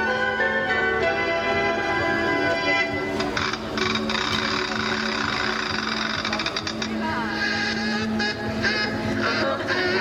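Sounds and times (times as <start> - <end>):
crowd voices: 0.0 - 10.0
parade music: 0.0 - 10.0.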